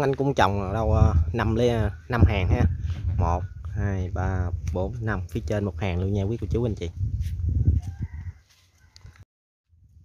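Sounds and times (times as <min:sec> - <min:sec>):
wind rumbling on microphone: 0:00.0 - 0:10.0
rooster crowing faintly: 0:07.6 - 0:09.2.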